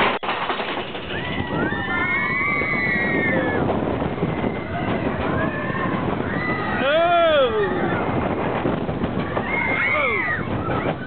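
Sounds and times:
roller coaster rumbling on track: 0.0 - 11.0.

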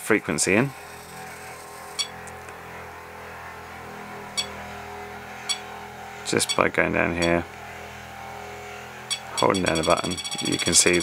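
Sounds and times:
short high-pitched beeps: 6.4 - 6.6, 9.1 - 11.0.

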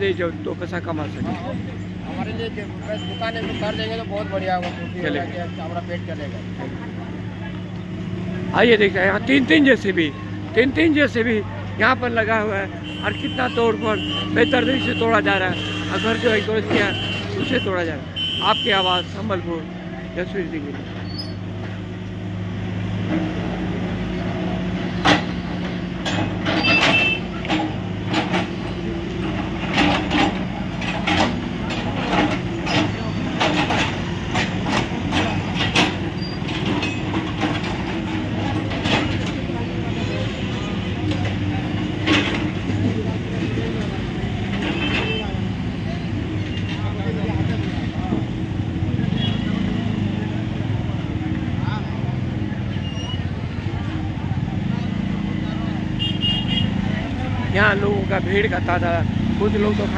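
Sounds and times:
people talking: 0.0 - 20.9, 28.7 - 48.4, 56.7 - 59.9
diesel engine running: 0.0 - 59.9.

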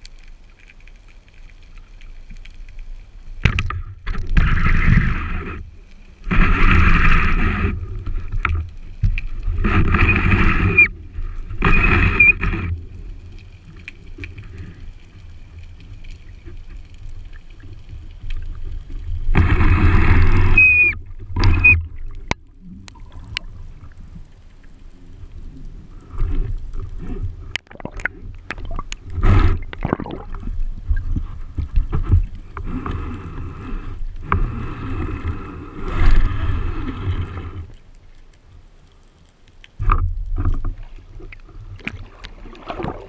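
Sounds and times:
diver breathing with high whistle: 10.0 - 11.0, 11.7 - 12.5, 20.2 - 21.8
underwater churning rumble: 16.8 - 37.7.

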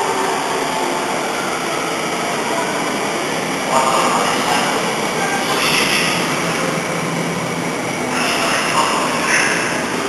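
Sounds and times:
electric train slowing into station: 0.0 - 10.0
train wheel and running noise: 0.0 - 10.0.

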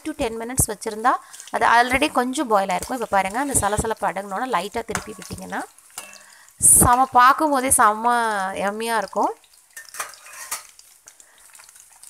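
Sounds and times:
batter deep-frying in hot oil: 0.0 - 12.0.

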